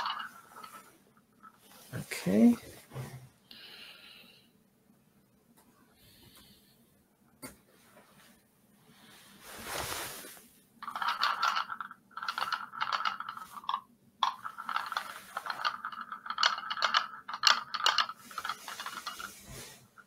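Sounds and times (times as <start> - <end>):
magnet rattling in a cup: 0.0 - 1.8, 10.8 - 20.0
faint steady hum: 0.0 - 20.0.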